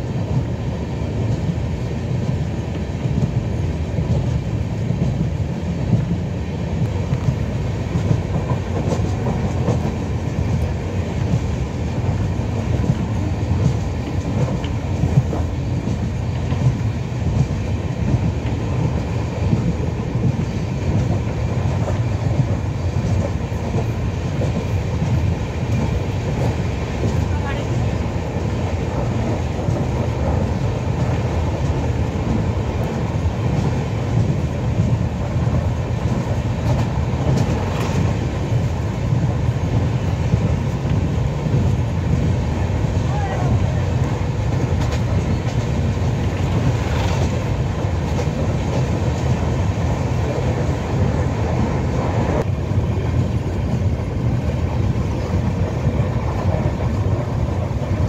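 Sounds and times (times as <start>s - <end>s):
train wheels rumbling on track: 0.0s - 58.0s.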